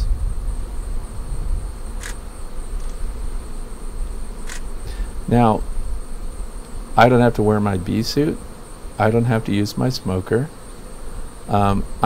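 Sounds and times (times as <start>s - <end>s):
honeybees buzzing: 0.0s - 12.0s.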